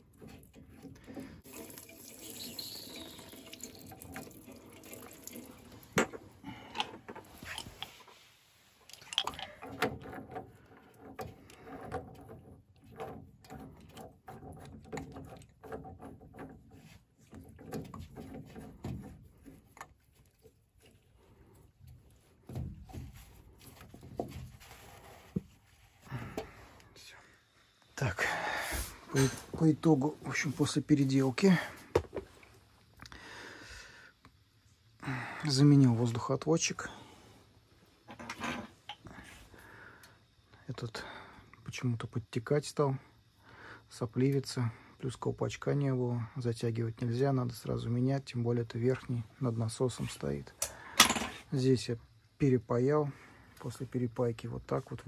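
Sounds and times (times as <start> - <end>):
water dripping and trickling: 0.0 - 6.4, 8.8 - 23.8.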